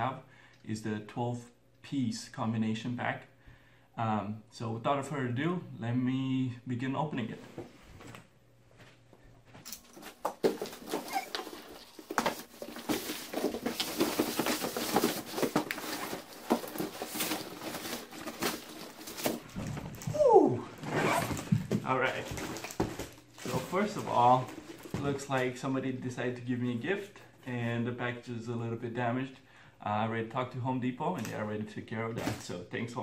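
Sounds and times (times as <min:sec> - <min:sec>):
plastic wrap crinkling: 0:09.8 - 0:20.2, 0:21.0 - 0:25.3.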